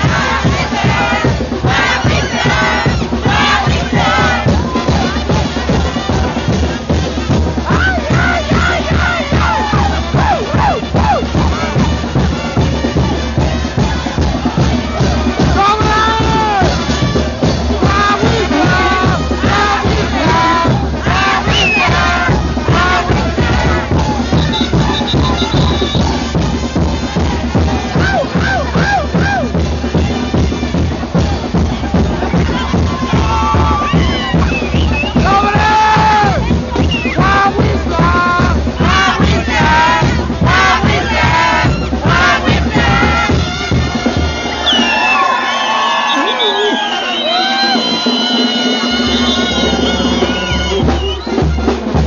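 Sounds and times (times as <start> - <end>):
crowd shouting and yelling: 0.0 - 52.0
loud band music: 0.0 - 52.0.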